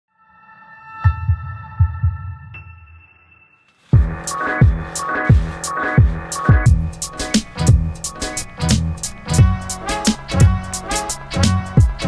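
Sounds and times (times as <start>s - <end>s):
electronic drum beat: 4.0s - 12.0s.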